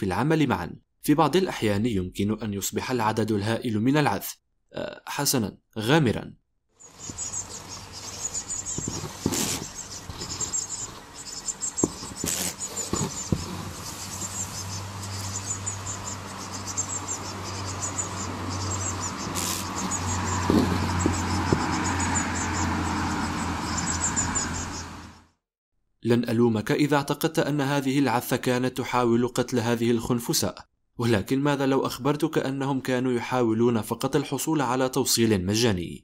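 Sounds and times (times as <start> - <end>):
beetle wings buzzing: 6.8 - 25.0
faint high chirping: 6.8 - 25.0.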